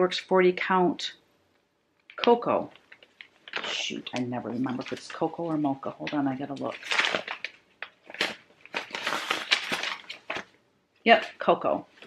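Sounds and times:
paper rustling and crinkling: 0:02.1 - 0:10.6.

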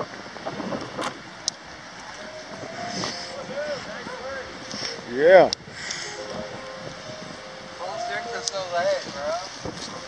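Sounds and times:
wind on microphone: 0:00.0 - 0:10.0
faint distant voices: 0:02.2 - 0:10.0.

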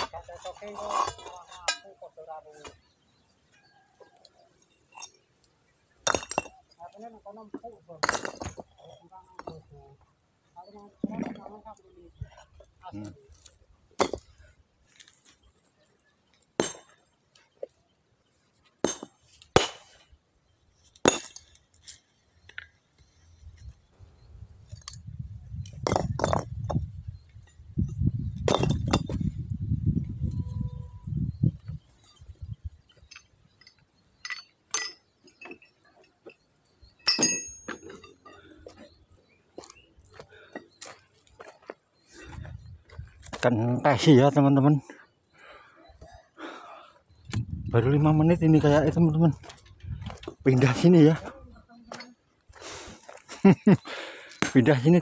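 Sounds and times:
sledgehammer clinking on stone: 0:04.7 - 0:05.3, 0:06.0 - 0:06.8, 0:08.0 - 0:09.6, 0:14.0 - 0:14.4, 0:18.8 - 0:20.0, 0:20.9 - 0:21.6, 0:25.7 - 0:27.6, 0:28.4 - 0:29.3, 0:32.9 - 0:38.8.

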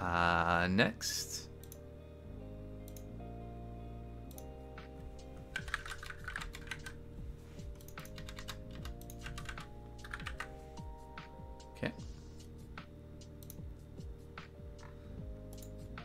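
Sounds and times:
quiet background music: 0:00.0 - 0:16.0
computer keyboard typing: 0:05.5 - 0:07.0, 0:07.8 - 0:10.5.

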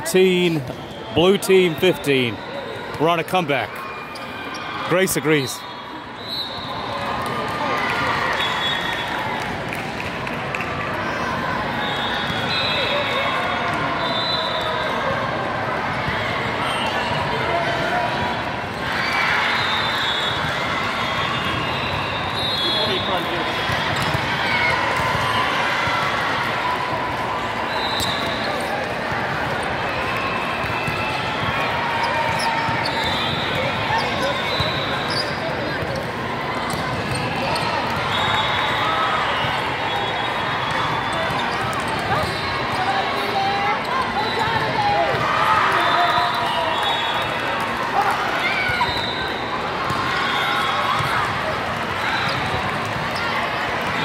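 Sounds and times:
many voices talking and calling: 0:31.2 - 0:54.0.

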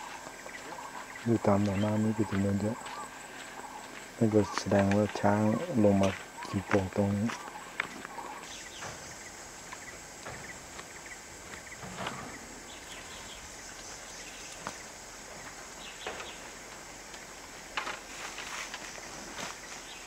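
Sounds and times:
faint bird chirps: 0:00.0 - 0:16.5
steady hiss: 0:00.0 - 0:20.0.

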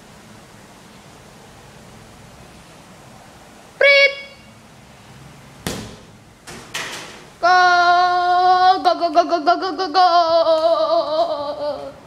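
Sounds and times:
child shouting high-pitched: 0:03.8 - 0:04.5
child yelling: 0:03.8 - 0:04.5
football thudding on tiled floor: 0:05.6 - 0:07.2.

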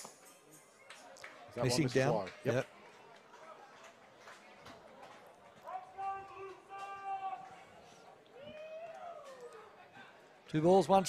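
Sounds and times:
faint ballpark ambience: 0:00.0 - 0:11.0
distant voice shouting: 0:05.6 - 0:07.5.

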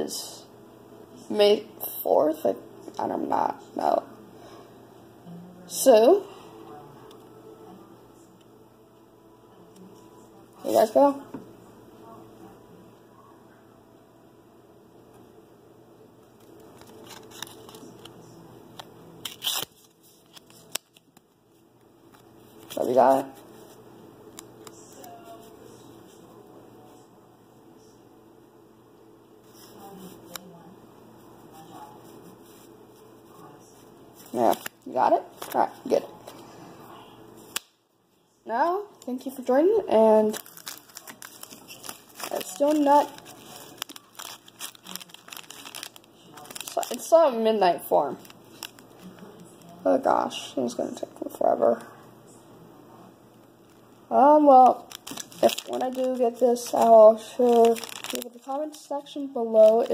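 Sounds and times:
foil wrapper crinkling: 0:16.2 - 0:18.2, 0:18.8 - 0:21.4, 0:22.1 - 0:25.5, 0:40.1 - 0:47.2, 0:48.1 - 0:49.8, 0:54.6 - 0:59.9
card clicks and crackles: 0:16.3 - 0:21.4, 0:40.3 - 0:47.0, 0:48.2 - 0:49.7, 0:54.9 - 0:58.5
card ripping: 0:16.4 - 0:21.2, 0:34.2 - 0:35.7, 0:40.2 - 0:47.1, 0:54.9 - 0:58.5.

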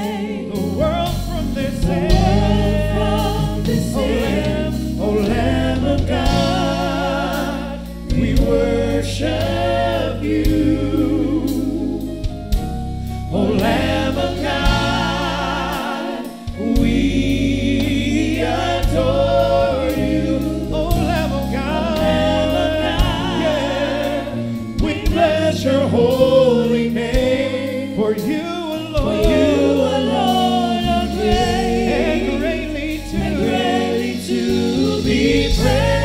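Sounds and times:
drums: 0:00.0 - 0:36.0
keyboard: 0:00.0 - 0:36.0
singers holding long notes: 0:13.3 - 0:36.0.

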